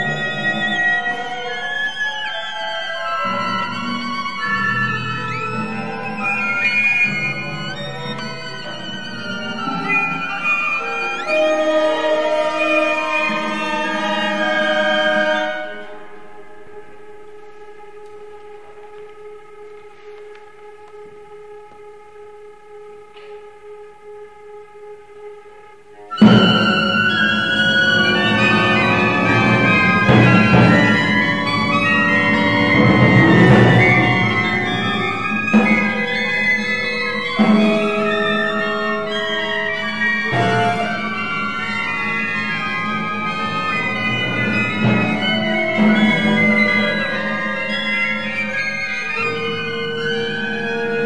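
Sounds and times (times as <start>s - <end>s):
violin and ensemble music: 0.0s - 51.0s.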